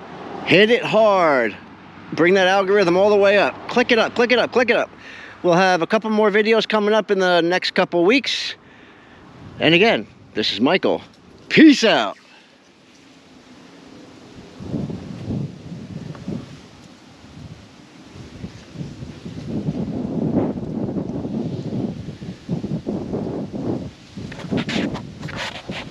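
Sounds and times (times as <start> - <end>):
wind buffeting microphone: 9.2 - 25.9.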